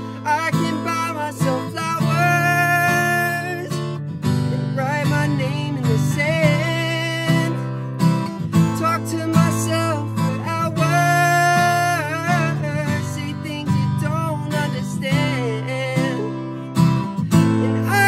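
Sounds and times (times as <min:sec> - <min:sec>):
man singing: 0:00.0 - 0:18.0
strummed acoustic guitar: 0:00.0 - 0:18.0.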